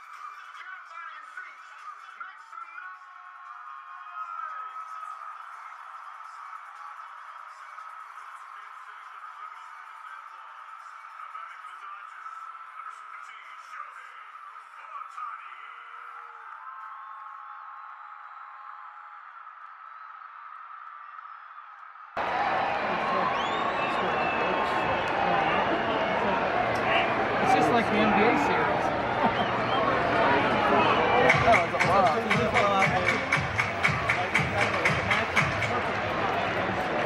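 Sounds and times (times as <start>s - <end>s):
music over stadium speakers: 0.0s - 18.0s, 22.2s - 37.0s
crowd murmur and voices: 0.0s - 19.8s, 22.1s - 37.0s.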